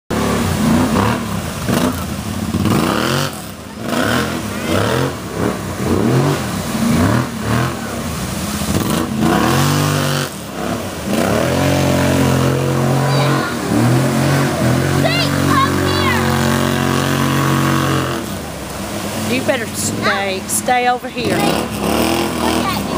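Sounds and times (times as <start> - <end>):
atv engine revving: 0.1 - 22.9
water splashing from tyres: 0.1 - 22.9.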